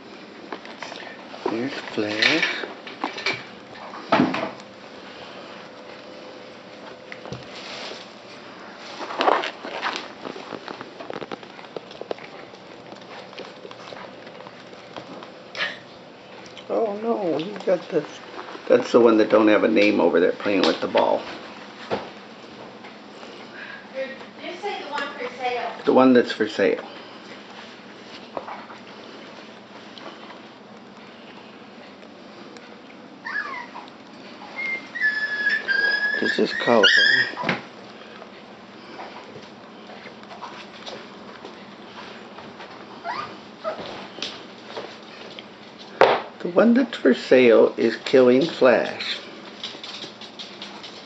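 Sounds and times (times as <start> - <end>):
puppies scuffling: 0.1 - 23.5, 24.1 - 51.0
paws clicking on wooden floor: 8.9 - 16.7, 26.9 - 46.3, 48.0 - 51.0
puppy noises: 9.0 - 18.6, 31.0 - 45.6
puppy whining: 33.2 - 37.7, 42.9 - 44.3.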